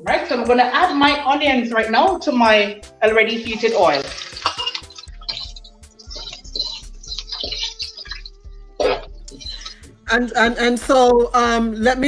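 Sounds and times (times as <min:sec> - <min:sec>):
background music: 0:00.0 - 0:12.0
onions sizzling in hot oil: 0:03.4 - 0:05.1.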